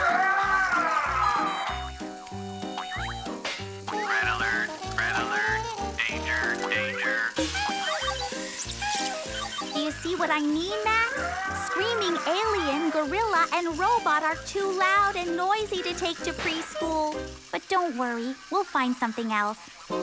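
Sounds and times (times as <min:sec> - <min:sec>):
bouncy cartoon music: 0:00.0 - 0:18.3
sliding warbling toy sound effects: 0:00.0 - 0:19.9.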